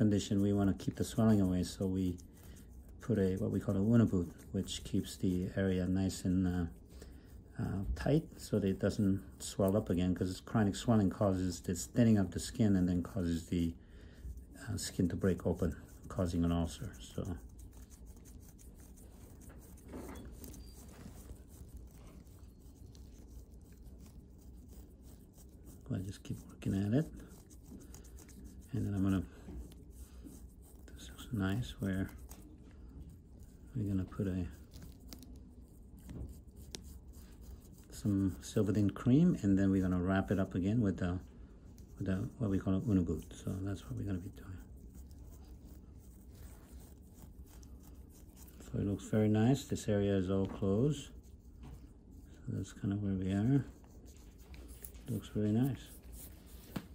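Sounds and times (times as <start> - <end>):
low room hum: 0.0 - 56.9
scalpel scraping dry skin: 14.4 - 40.6.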